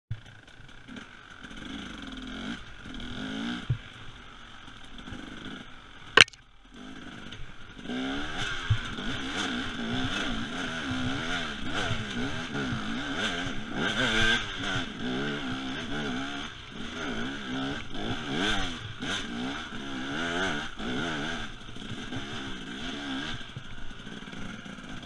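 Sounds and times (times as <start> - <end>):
single sharp crack: 6.2 - 6.4
two-stroke engine revving: 6.8 - 25.0.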